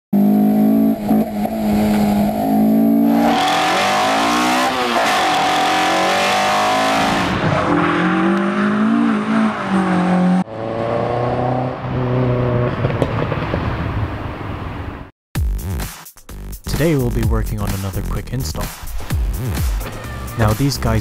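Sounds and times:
car engine revving hard: 0:00.2 - 0:12.9.

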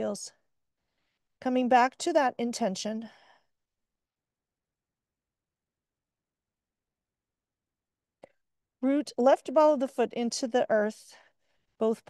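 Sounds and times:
woman speaking: 0:00.0 - 0:00.4, 0:01.4 - 0:03.2, 0:08.8 - 0:11.2.

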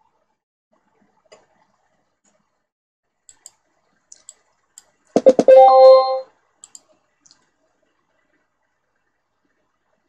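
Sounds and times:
computer mouse clicks: 0:03.3 - 0:05.5, 0:06.6 - 0:07.4.

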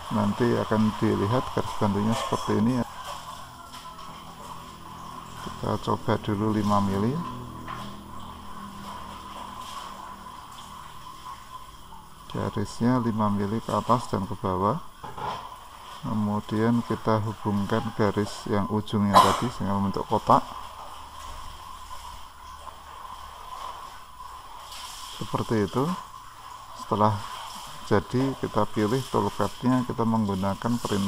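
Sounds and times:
faint background hum and hiss: 0:00.0 - 0:31.0.

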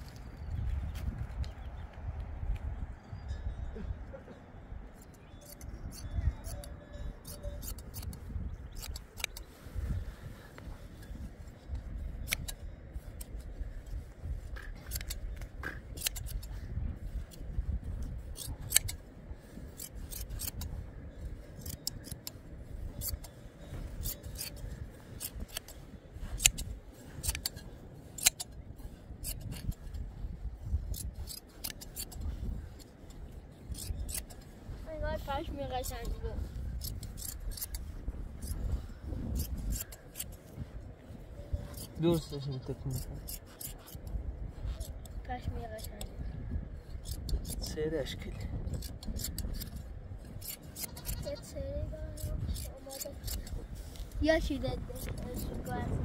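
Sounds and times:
shears snipping wool: 0:05.1 - 0:09.9, 0:12.2 - 0:12.6, 0:13.2 - 0:20.8, 0:21.4 - 0:34.5, 0:35.2 - 0:40.6, 0:41.6 - 0:46.2, 0:46.9 - 0:47.8, 0:48.6 - 0:55.7.

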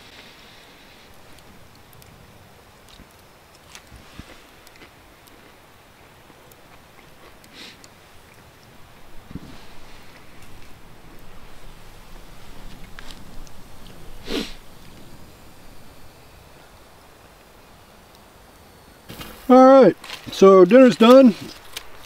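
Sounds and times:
campfire crackling: 0:00.0 - 0:22.0
person sniffing: 0:07.5 - 0:07.9, 0:14.2 - 0:14.6.

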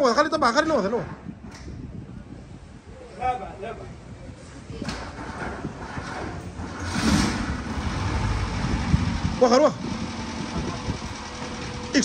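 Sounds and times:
van engine starting and running: 0:05.1 - 0:12.0.

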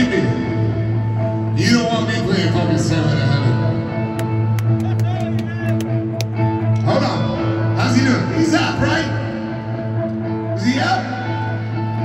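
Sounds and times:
rock band sustained chords: 0:00.0 - 0:12.0.

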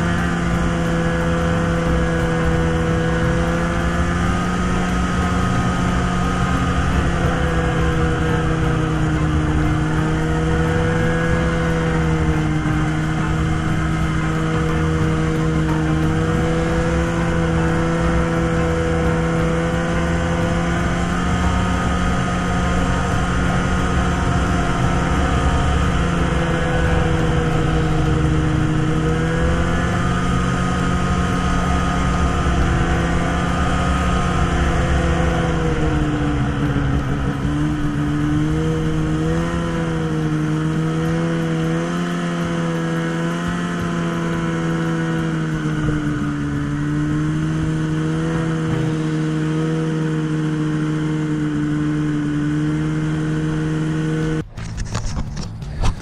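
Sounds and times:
snowmobile engine running: 0:00.0 - 0:56.0
track and wind noise: 0:00.0 - 0:56.0.

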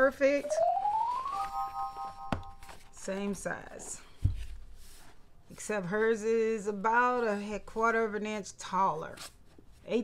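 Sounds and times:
pure tone gliding upward: 0:00.4 - 0:02.5
synthesized chime chord: 0:00.4 - 0:02.6.

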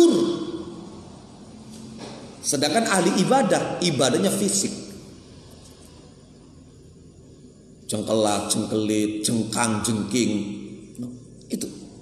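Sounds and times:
man talking: 0:00.0 - 0:00.6, 0:02.4 - 0:04.9, 0:07.9 - 0:11.9
low steady hum: 0:00.0 - 0:12.0.

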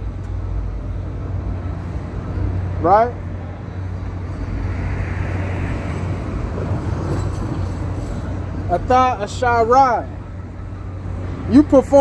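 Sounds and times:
low rumble of street traffic: 0:00.0 - 0:12.0
vehicle passing: 0:00.8 - 0:12.0.

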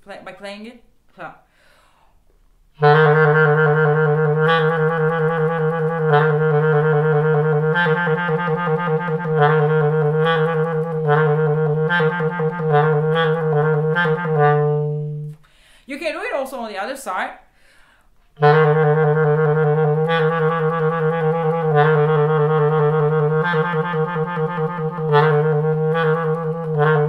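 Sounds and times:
clarinet playing low notes: 0:02.8 - 0:15.4, 0:18.4 - 0:27.0.

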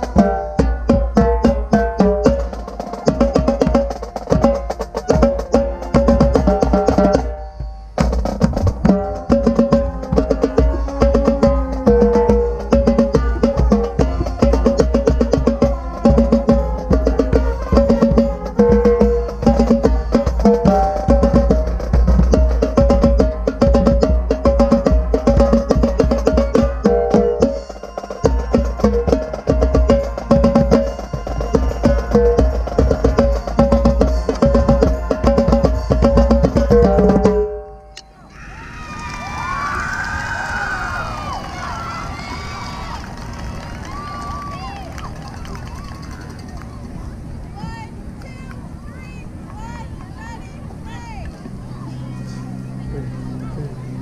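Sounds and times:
marching tenor drums: 0:00.0 - 0:37.6
marching band playing: 0:00.0 - 0:38.0
people cheering and shouting: 0:38.0 - 0:54.0.

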